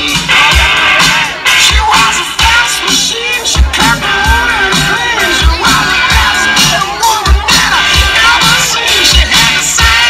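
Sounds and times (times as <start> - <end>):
crowd shouting and cheering: 0.0 - 10.0
music with a steady beat: 0.0 - 10.0.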